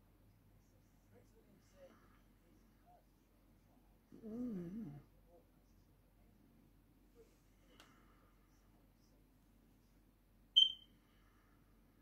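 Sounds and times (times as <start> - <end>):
short high-pitched beep: 10.6 - 10.9.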